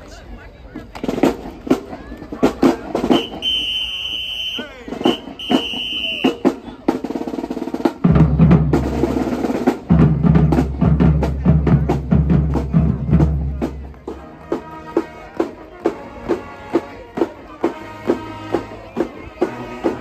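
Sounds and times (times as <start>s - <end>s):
bass drums and band: 0.7s - 20.0s
snare drum hits and rolls: 1.0s - 20.0s
high whistle blown: 3.1s - 6.4s.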